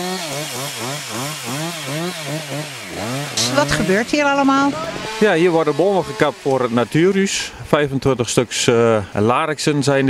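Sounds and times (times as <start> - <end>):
chainsaw engine running: 0.0 - 9.0.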